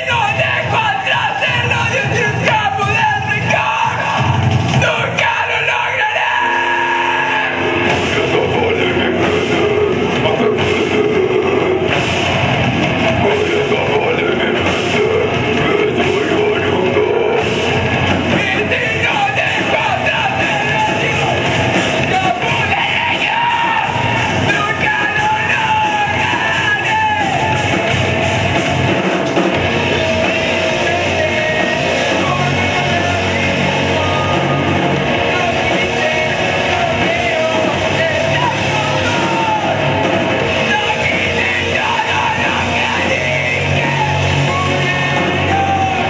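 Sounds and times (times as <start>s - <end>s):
screamed vocals: 0.0s - 7.6s
distorted guitars: 0.0s - 46.0s
drums: 0.0s - 46.0s.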